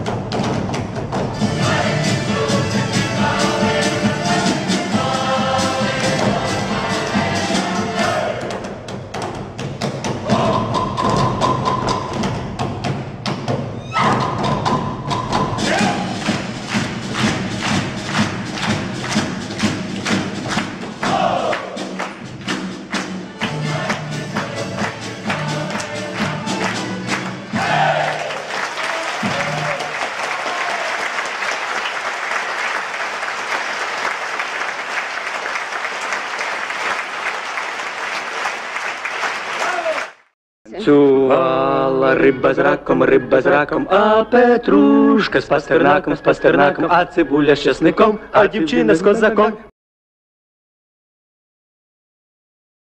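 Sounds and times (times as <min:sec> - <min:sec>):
folk band playing dance tune: 0:00.0 - 0:08.4, 0:14.0 - 0:30.1
audience applause: 0:15.9 - 0:40.3.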